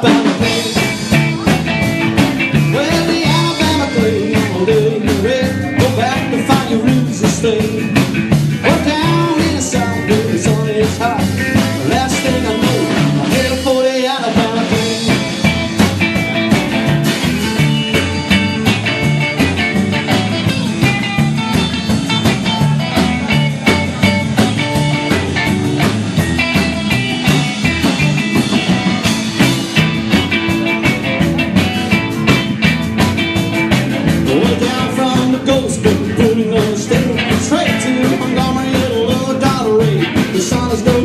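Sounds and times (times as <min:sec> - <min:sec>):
electric guitar lines: 0:00.0 - 0:41.0
plucked double bass: 0:00.0 - 0:41.0
steady drum beat: 0:00.0 - 0:41.0.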